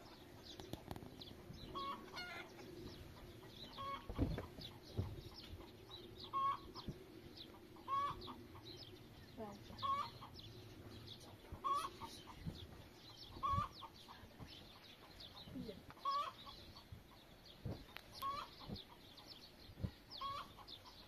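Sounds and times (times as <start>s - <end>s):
chickens clucking: 0.0s - 21.0s.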